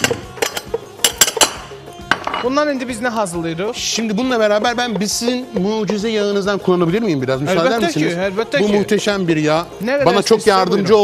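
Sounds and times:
dishes and utensils clinking: 0:00.0 - 0:02.6
background music: 0:00.0 - 0:11.0.

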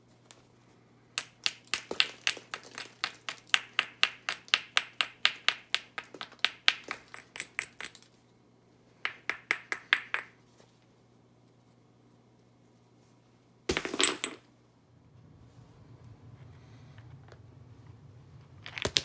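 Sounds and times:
hammerstone tapping stone: 0:01.2 - 0:08.0, 0:09.1 - 0:10.3.

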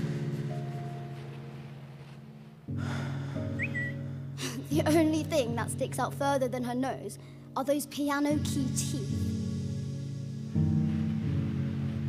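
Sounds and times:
low held music chord: 0:00.0 - 0:07.7, 0:08.3 - 0:12.0.

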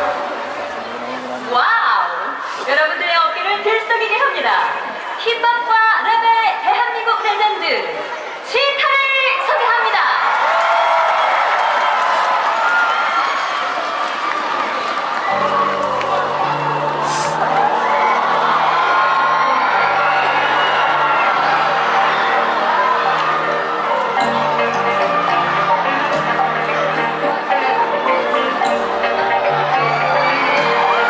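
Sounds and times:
crowd cheering and whooping: 0:09.4 - 0:31.0.

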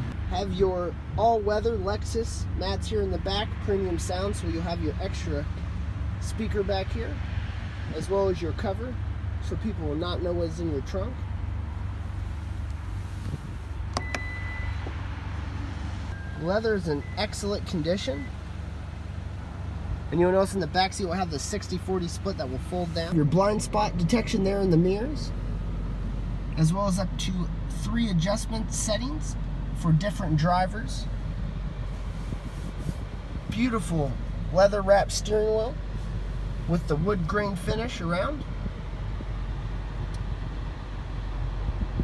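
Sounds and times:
car engine idling: 0:00.0 - 0:42.0
electronic beep: 0:14.0 - 0:14.8.

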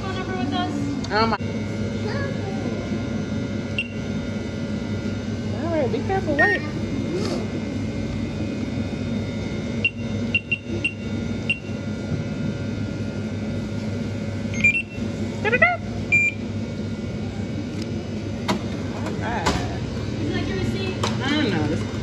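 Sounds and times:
steady electrical hum: 0:00.0 - 0:22.0
short electronic beeps: 0:03.8 - 0:04.0, 0:09.8 - 0:11.7, 0:14.6 - 0:15.0, 0:16.1 - 0:16.4.

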